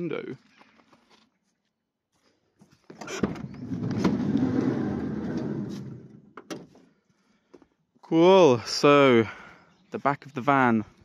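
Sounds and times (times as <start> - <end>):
sliding door rumbling on rail: 3.3 - 6.2.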